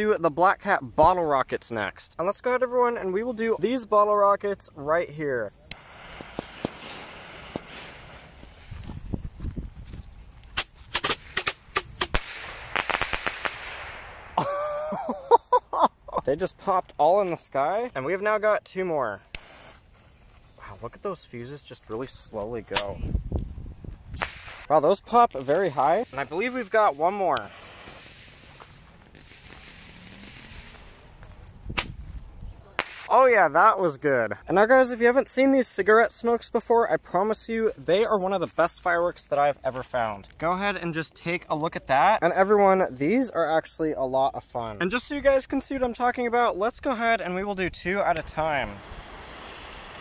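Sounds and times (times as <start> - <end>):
fuses hissing: 5.6 - 8.9, 19.2 - 21.1, 25.7 - 28.8, 48.2 - 50.0
rockets popping: 5.7 - 15.4, 19.2 - 33.2, 47.7 - 50.0
low rush of rockets: 5.8 - 9.6, 10.5 - 14.4, 19.2 - 33.1, 48.2 - 50.0.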